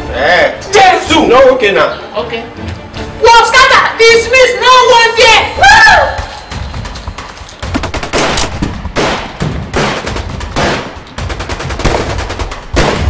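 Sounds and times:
machine-gun fire bursts: 6.8 - 13.0.

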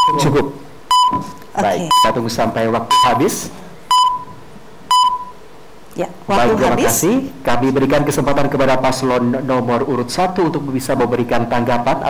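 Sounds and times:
timer beeping: 0.0 - 2.3, 2.9 - 3.3, 3.9 - 4.3, 4.9 - 5.4.

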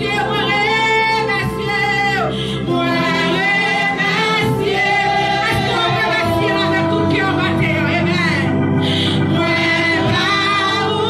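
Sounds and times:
woman leading singing: 0.0 - 8.6, 9.3 - 11.0
group singing gospel: 0.0 - 11.0.

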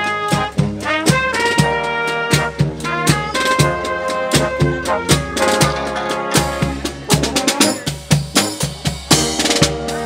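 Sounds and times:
brass marching band playing: 0.0 - 10.0
steady drum beat: 0.0 - 10.0.

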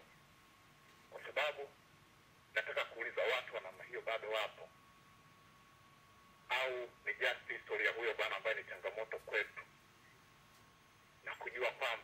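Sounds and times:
faint steady tone: 0.0 - 12.0
person speaking over telephone: 1.1 - 1.8, 2.5 - 4.7, 6.5 - 9.7, 11.2 - 12.0.

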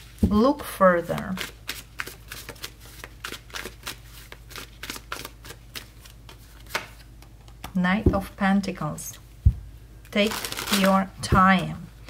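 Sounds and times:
cards being shuffled: 1.0 - 7.6, 10.2 - 11.8.

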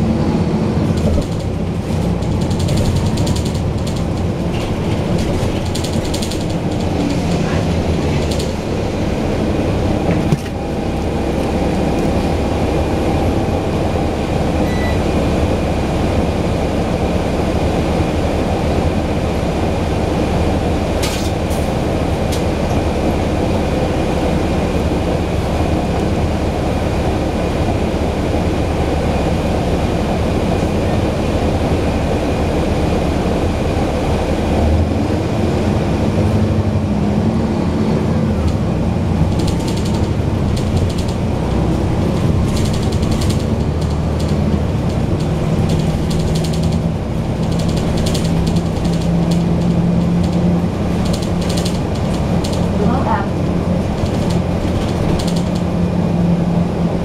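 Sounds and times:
diesel engine running loudly: 0.0 - 57.0.

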